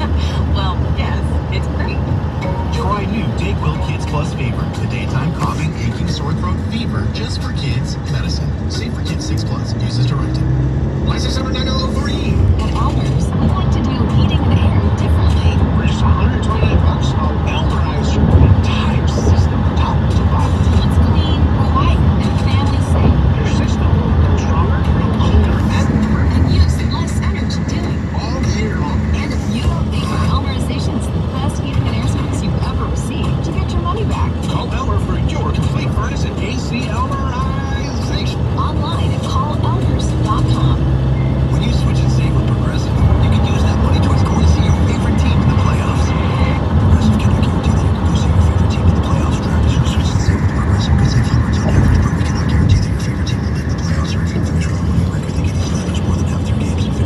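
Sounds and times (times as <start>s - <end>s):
broadcast music: 0.0s - 57.0s
indistinct talking: 0.0s - 57.0s
steady low rumble: 0.0s - 57.0s.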